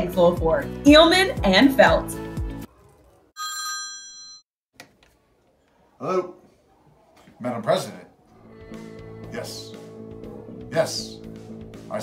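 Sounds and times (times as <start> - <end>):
desk telephone electronic ring: 3.4 - 4.5.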